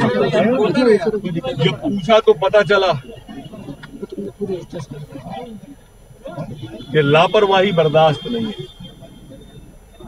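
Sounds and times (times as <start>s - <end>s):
crowd talking faintly: 0.0s - 10.0s.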